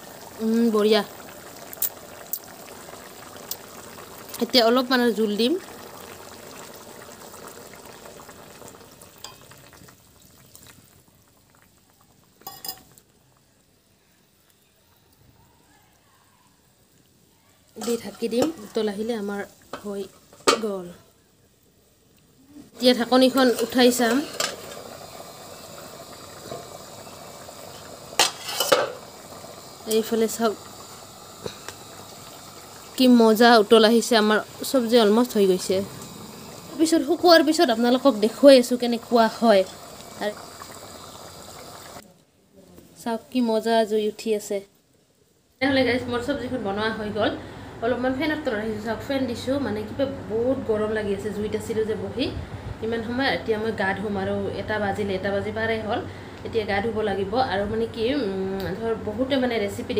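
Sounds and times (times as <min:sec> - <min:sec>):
curry bubbling in a wok: 0:00.0 - 0:42.1
stirring in a pan: 0:09.1 - 0:10.9, 0:17.6 - 0:20.7, 0:25.8 - 0:34.8
metal lid clattering on pan: 0:23.6 - 0:24.6, 0:28.2 - 0:29.0.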